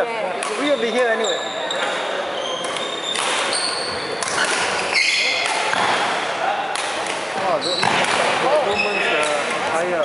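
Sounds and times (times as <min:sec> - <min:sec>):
background chatter: 0:00.0 - 0:10.0
court shoes squeaking: 0:00.3 - 0:10.0.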